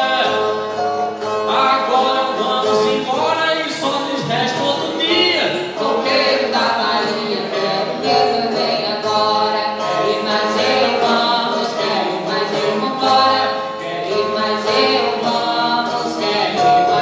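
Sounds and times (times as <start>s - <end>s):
acoustic guitars: 0.0s - 17.0s
man and woman singing together: 0.0s - 17.0s.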